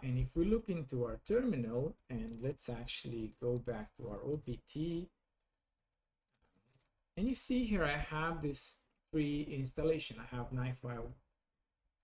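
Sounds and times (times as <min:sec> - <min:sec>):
computer keyboard typing: 0:00.0 - 0:07.5, 0:10.8 - 0:11.2.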